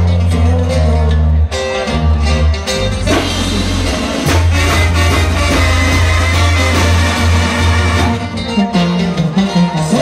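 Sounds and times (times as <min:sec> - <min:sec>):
guitars playing: 0:00.0 - 0:10.0
brass band music: 0:01.6 - 0:10.0
tuba low line: 0:02.8 - 0:09.8.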